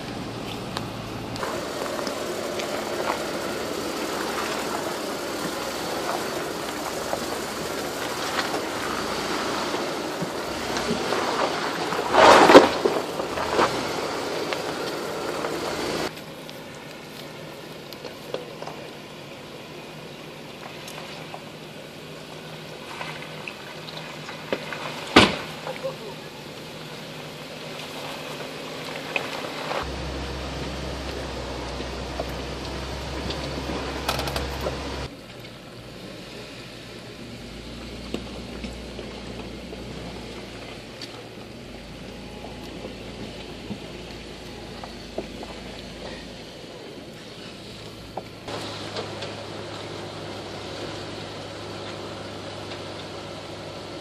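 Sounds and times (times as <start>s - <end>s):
engine and driveline rumble: 0.0s - 54.0s.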